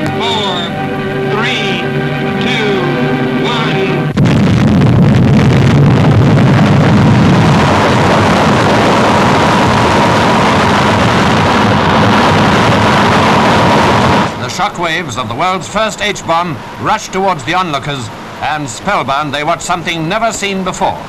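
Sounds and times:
faint high tone: 0.0s - 4.1s
deep explosion rumble: 1.4s - 14.5s.

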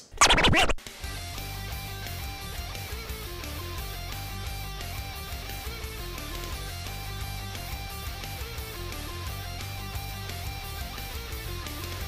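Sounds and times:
record scratch effect: 0.0s - 0.8s.

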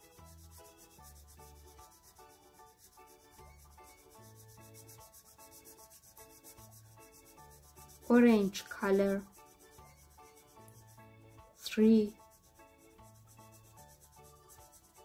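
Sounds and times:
marker scratching on paper: 0.0s - 15.0s
quiet background music: 0.0s - 15.0s.

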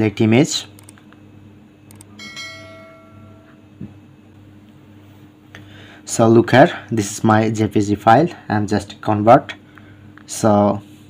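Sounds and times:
mouse click: 1.9s - 2.1s
bell-like chime: 2.2s - 3.6s.

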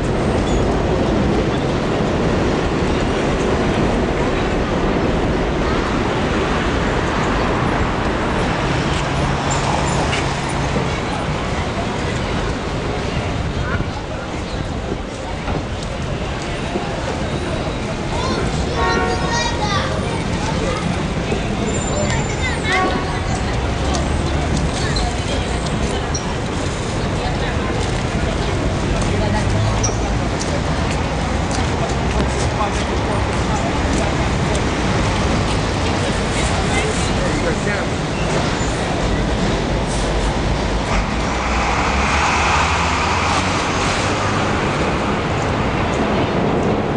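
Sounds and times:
passers-by voices: 0.0s - 46.9s
traffic rumble: 0.0s - 46.9s.

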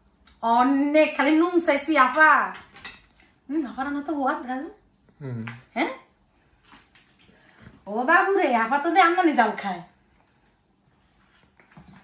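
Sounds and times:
woman talking: 0.4s - 2.6s, 3.5s - 4.8s, 5.7s - 6.1s, 7.8s - 10.0s.

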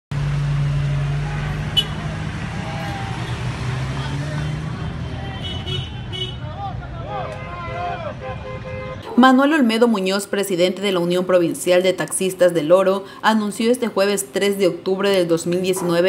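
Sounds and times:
vehicle engine hum and road noise: 0.1s - 9.0s.

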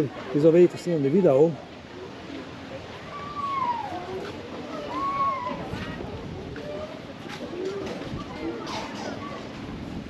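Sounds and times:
distant people talking: 0.0s - 10.0s
outdoor background noise: 0.0s - 10.0s.

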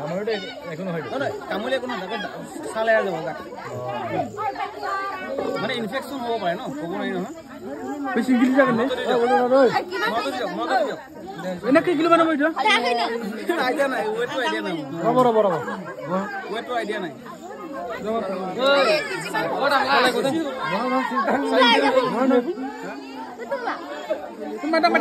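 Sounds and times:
people chattering: 0.0s - 25.0s.

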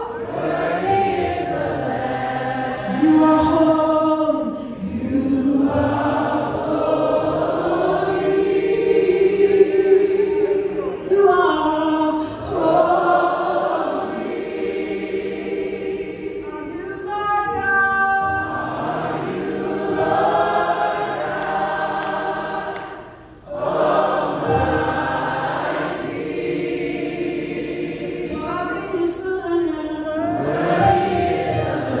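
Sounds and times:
choir backing voices: 0.0s - 3.9s, 4.9s - 11.1s, 12.4s - 16.7s, 18.4s - 28.7s, 30.2s - 32.0s.

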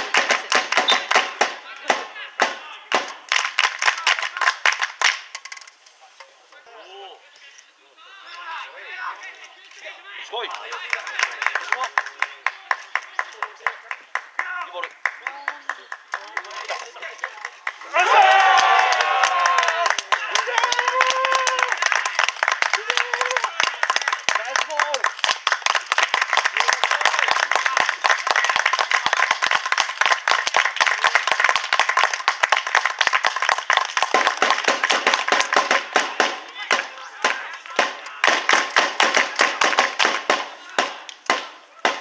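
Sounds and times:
hands clapping: 0.0s - 5.4s, 10.4s - 42.0s.

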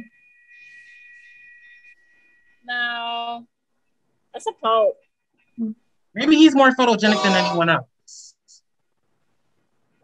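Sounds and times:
high-pitched electronic whine: 0.0s - 3.4s.

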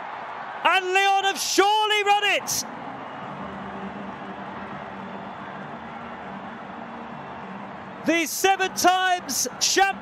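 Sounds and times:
stadium ambience: 0.0s - 10.0s.

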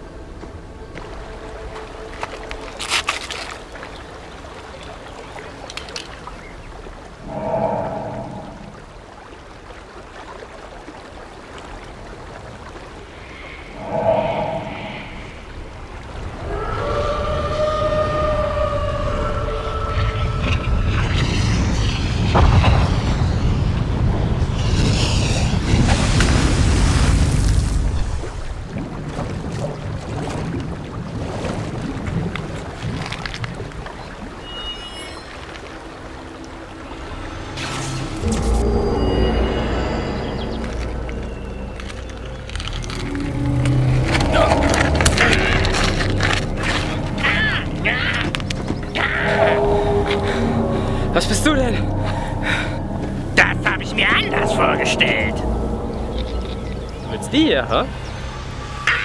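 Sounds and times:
deep rumbling build: 7.2s - 9.2s, 13.4s - 29.0s, 35.8s - 59.0s
swells with tones: 13.2s - 25.4s, 34.4s - 47.9s, 48.7s - 59.0s.

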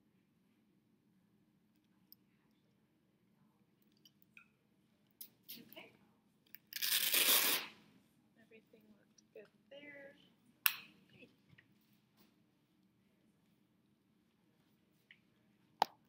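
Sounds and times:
velcro tearing open: 6.7s - 7.8s.

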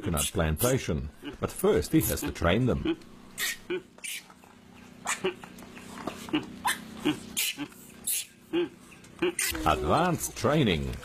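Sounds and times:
monkey squeaky calls: 3.4s - 5.5s, 6.6s - 9.8s.

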